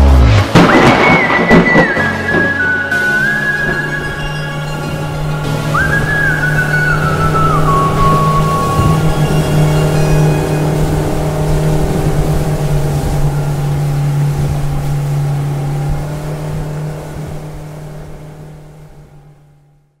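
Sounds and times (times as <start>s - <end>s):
motorboat engine droning: 0.0s - 20.0s.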